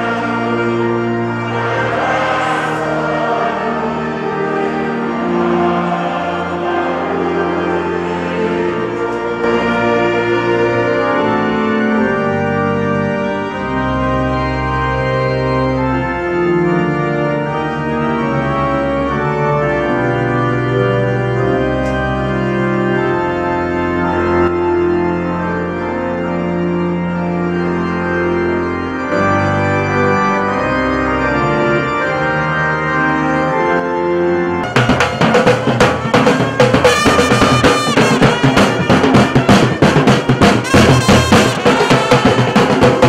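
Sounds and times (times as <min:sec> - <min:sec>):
organ playing a hymn: 0:00.0 - 0:43.0.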